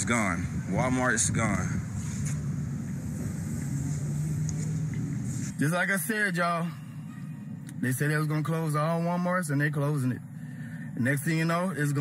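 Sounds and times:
mechanical hum and rumble: 0.0 - 12.0
steady low tone: 0.0 - 12.0.

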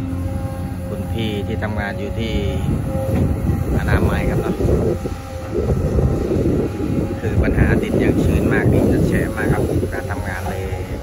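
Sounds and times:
excavator engine and hydraulic rumble: 0.0 - 11.0
wind buffeting microphone: 0.0 - 11.0.

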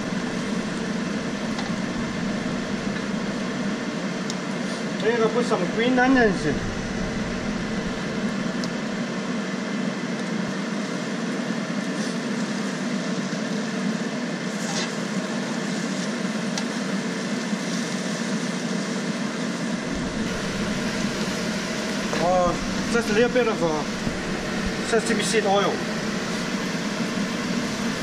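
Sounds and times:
constant hum: 0.0 - 9.4, 19.8 - 28.0.

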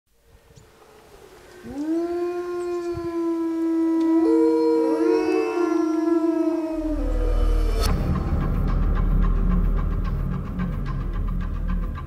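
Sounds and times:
wolves howling: 0.8 - 7.9.

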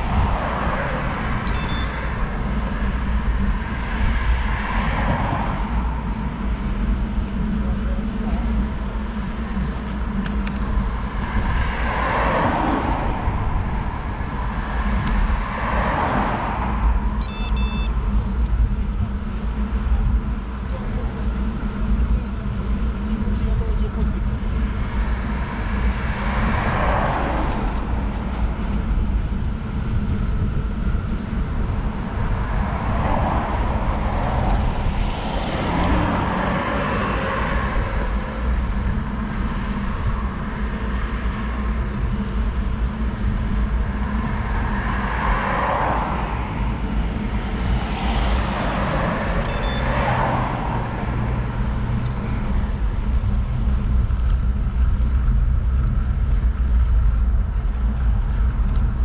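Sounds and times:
passing vehicles: 0.0 - 59.0
wind rumble on microphone: 0.0 - 59.0.

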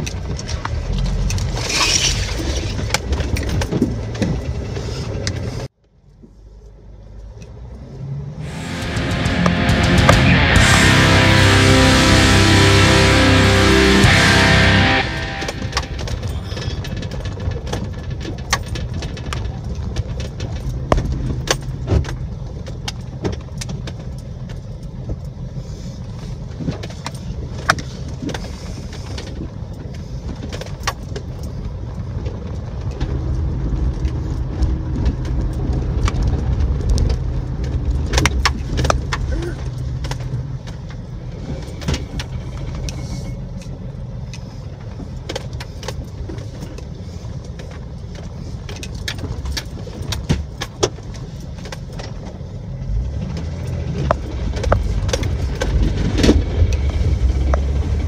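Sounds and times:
body rattles and knocks: 2.6 - 4.8, 16.1 - 25.4, 44.8 - 57.8
engine and drivetrain drone: 6.6 - 58.0.

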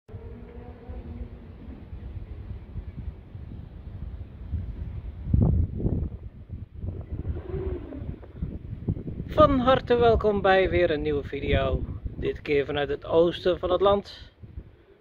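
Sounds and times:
wind buffeting microphone: 0.1 - 15.0.

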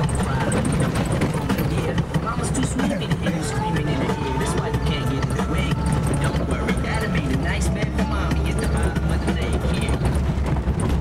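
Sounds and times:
car engine running: 0.0 - 11.0
knocks and rattles from bumps: 0.0 - 11.0.

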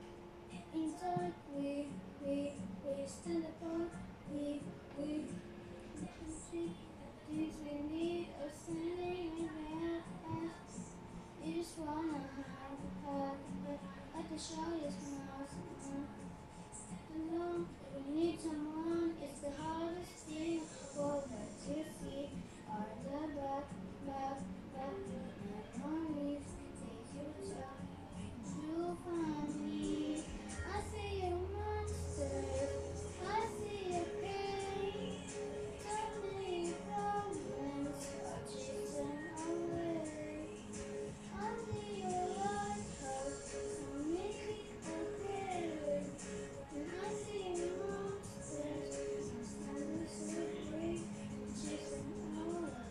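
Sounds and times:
karaoke backing track: 0.0 - 52.9
child singing: 0.5 - 10.8, 11.4 - 16.2, 16.8 - 52.9.

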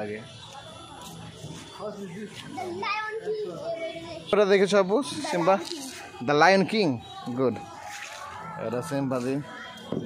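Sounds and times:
children talking and calling out: 2.3 - 10.0.

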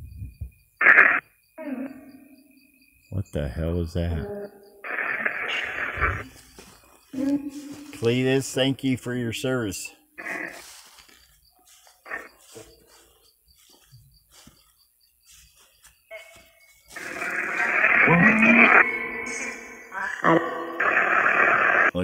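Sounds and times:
choppy radio static: 0.8 - 1.2, 4.8 - 6.4, 12.1 - 12.7, 16.2 - 22.0
garbled voice fragments: 3.2 - 6.3, 17.0 - 21.0.

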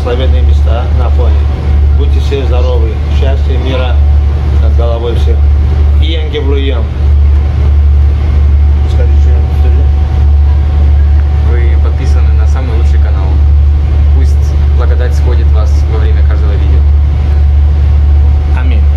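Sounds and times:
boat engine drone: 0.0 - 18.9
passengers talking: 0.0 - 18.9.

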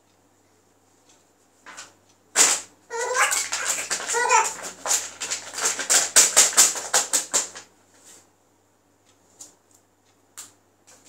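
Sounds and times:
baby squealing: 2.9 - 5.0
baby laughing: 2.9 - 6.0.

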